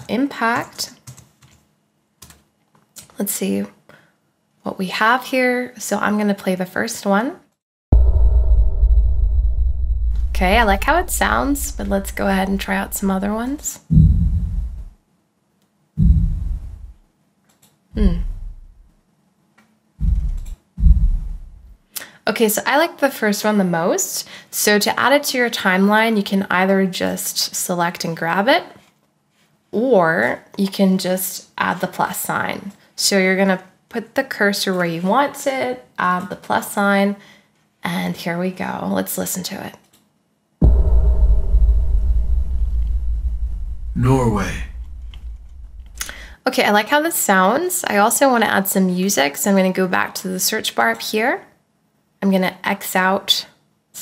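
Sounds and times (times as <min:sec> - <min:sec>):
deep cinematic sub impact hits: 0:07.9 - 0:14.9, 0:20.0 - 0:21.8, 0:40.6 - 0:46.0
deep reverberant rumble: 0:07.9 - 0:14.9, 0:20.0 - 0:21.7, 0:40.6 - 0:46.3.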